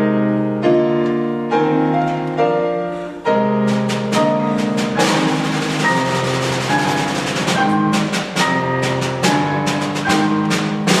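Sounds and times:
piano: 0.0 - 11.0
timpani: 0.0 - 11.0
drum strokes: 3.4 - 11.0
percussion roll: 3.4 - 11.0.

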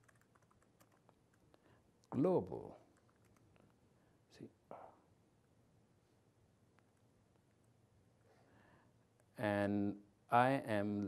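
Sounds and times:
laptop keyboard typing: 0.0 - 1.4, 2.9 - 3.7.

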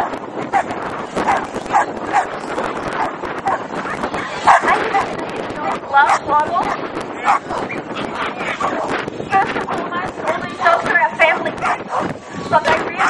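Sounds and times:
dogs barking and yipping: 0.0 - 9.0, 10.2 - 13.0
hubbub of voices: 0.0 - 13.0.

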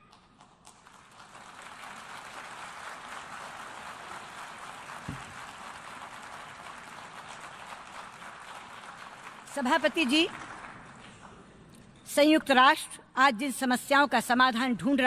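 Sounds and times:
audience applauding: 0.0 - 11.4.

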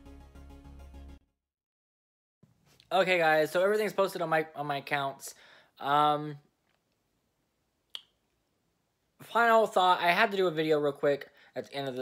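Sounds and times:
finger snap: 7.9 - 8.2.

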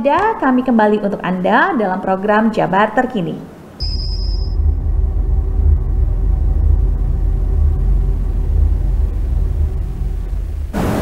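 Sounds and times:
high shimmering tone: 3.8 - 10.7
deep bass rumble: 3.8 - 10.8.

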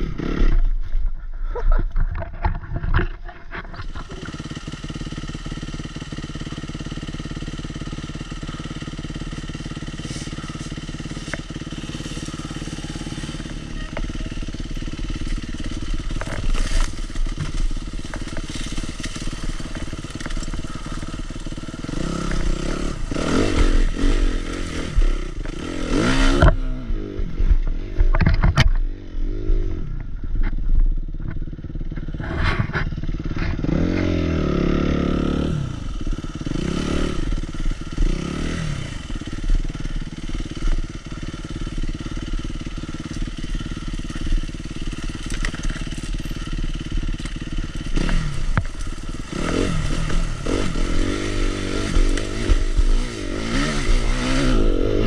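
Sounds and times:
dirt bike engine revving: 0.0 - 0.8, 2.3 - 30.0, 31.1 - 55.0
branches scraping against bike: 0.0 - 29.7, 30.4 - 55.0.

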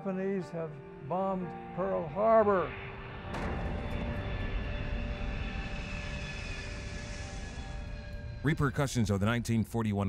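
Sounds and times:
droning aircraft engines: 2.0 - 10.0
low rumble: 2.6 - 9.5
explosion blast: 3.3 - 6.3.

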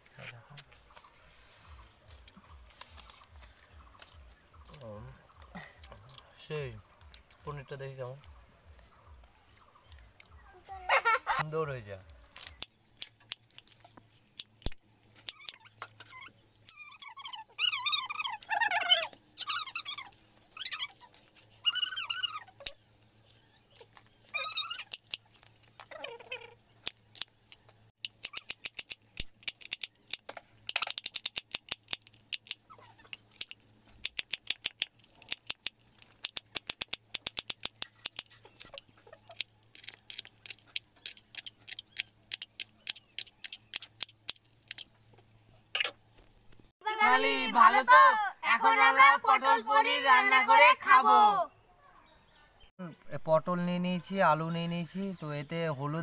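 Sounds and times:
short wavering animal calls: 15.4 - 22.8.

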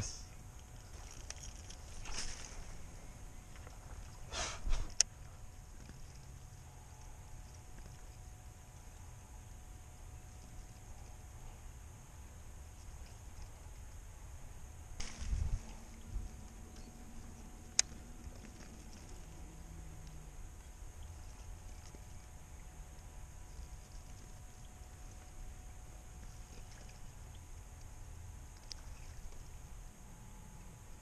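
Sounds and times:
open-water ambience low rumble: 0.0 - 31.0
fishing rod handling rustle: 0.4 - 8.3.

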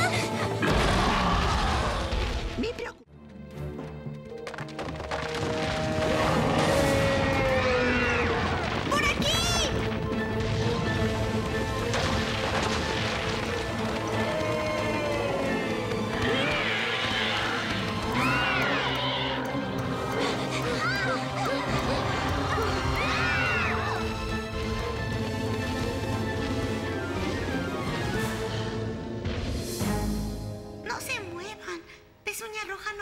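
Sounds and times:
cartoon background music: 6.6 - 33.0.

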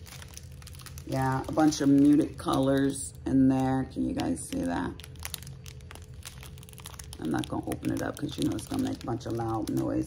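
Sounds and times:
faint steady hum: 0.0 - 10.0
plastic package crinkling: 0.0 - 10.0.

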